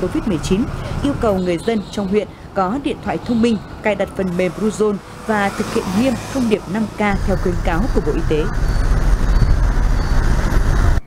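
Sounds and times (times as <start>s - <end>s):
cars and motorbikes driving: 0.0s - 11.0s.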